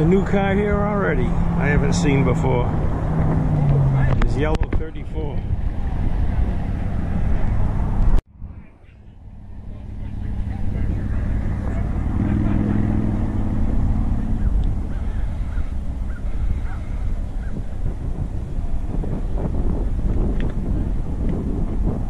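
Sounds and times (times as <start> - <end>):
wind buffeting microphone: 0.0 - 8.7, 9.4 - 22.0.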